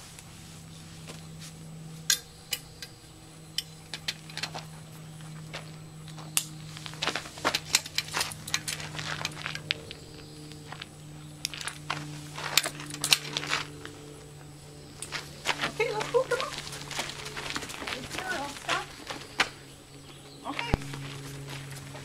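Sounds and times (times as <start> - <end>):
steady low hum: 0.0 - 22.0
harness buckles clicking and jingling: 2.1 - 14.3, 14.9 - 21.9.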